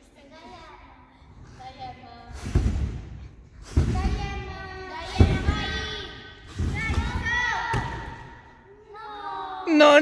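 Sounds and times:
trampoline bouncing thuds: 2.2s - 8.3s.

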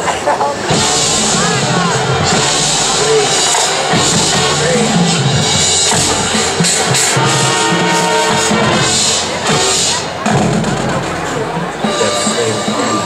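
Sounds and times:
marching band playing: 0.0s - 13.0s.

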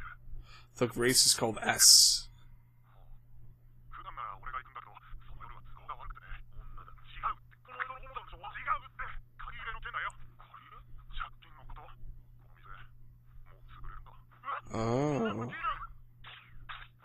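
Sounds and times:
low hum: 0.0s - 17.0s
voices talking: 3.9s - 16.8s.

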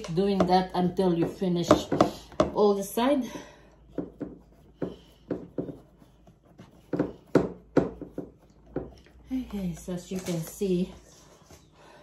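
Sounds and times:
fingers pressing dough on metal tray: 3.8s - 10.0s.

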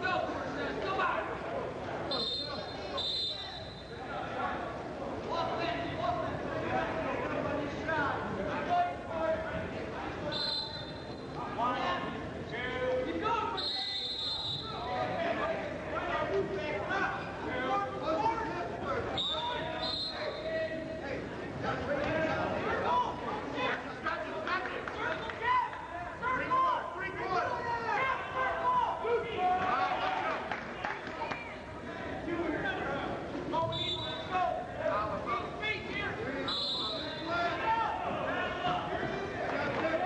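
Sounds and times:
referee's whistle blast: 2.1s - 4.0s, 13.6s - 14.9s, 19.2s - 20.5s, 33.7s - 34.3s, 36.5s - 37.3s.

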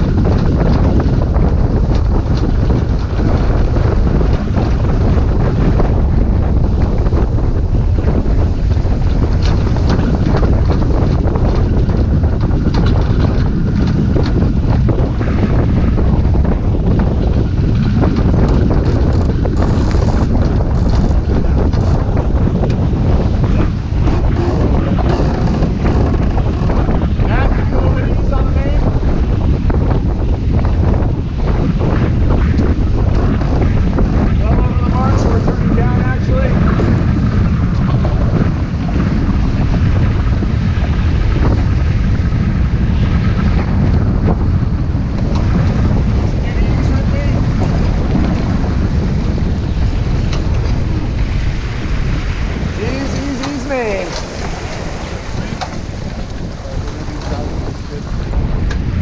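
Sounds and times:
water rushing along boat hull: 0.0s - 59.0s
wind buffeting microphone: 0.0s - 59.0s
faint voices: 52.7s - 58.4s.

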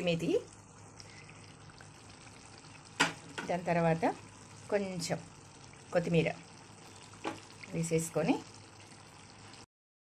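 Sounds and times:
curry simmering and sizzling: 0.0s - 9.7s.

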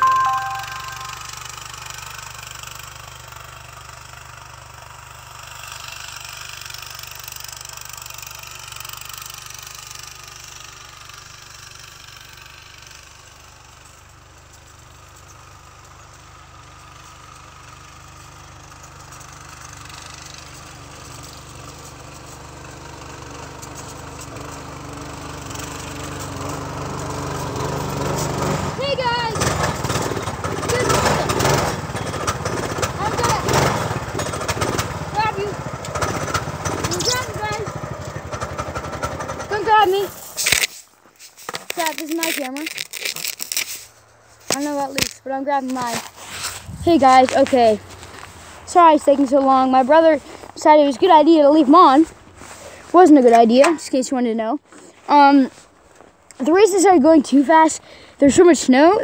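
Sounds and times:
go-kart engine running: 0.0s - 59.0s.

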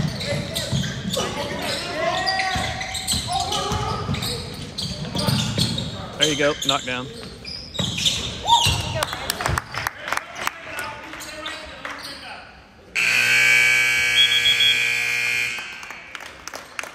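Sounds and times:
scoreboard horn buzzing: 13.0s - 15.9s.

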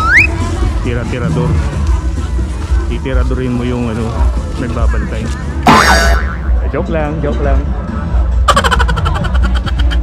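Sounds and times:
loud fairground din: 0.0s - 10.0s.

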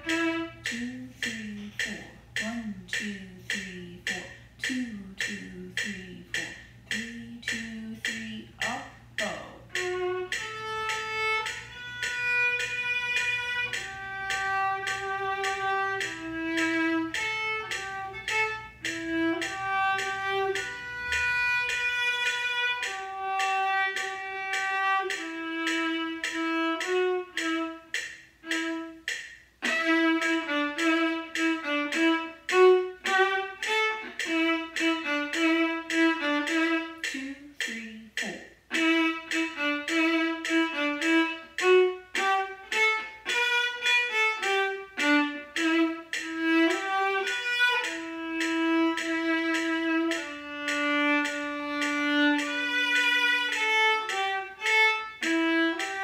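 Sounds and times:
solo viola bowed melody: 0.0s - 1.4s, 9.6s - 37.2s, 38.7s - 56.0s.

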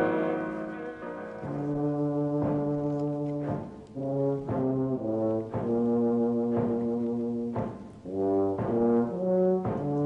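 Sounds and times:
brass sustained chord: 0.0s - 5.1s.

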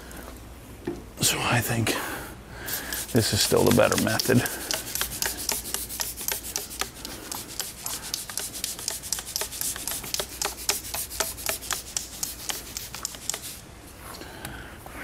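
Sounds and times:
trigger spray bottle hissing: 2.7s - 13.6s.

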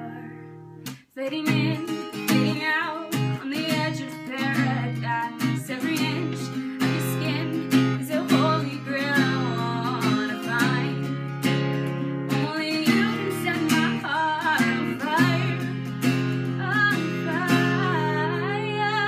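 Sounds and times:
woman singing: 0.0s - 0.4s, 1.1s - 11.2s, 12.3s - 19.0s
strummed acoustic guitar: 0.0s - 19.0s.

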